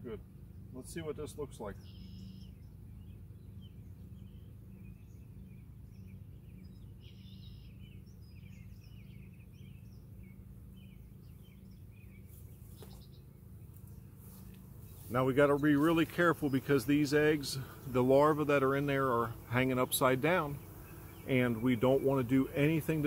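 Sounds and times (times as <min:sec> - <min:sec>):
honeybees humming: 0:00.0 - 0:23.0
songbirds chirping: 0:00.0 - 0:23.0.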